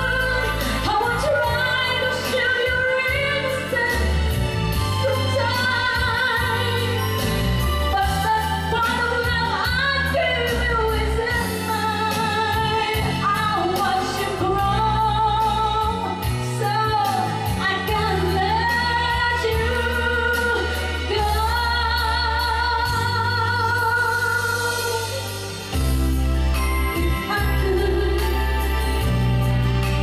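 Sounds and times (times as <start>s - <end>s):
instrumental accompaniment: 0.0s - 30.0s
woman singing a ballad: 0.0s - 30.0s.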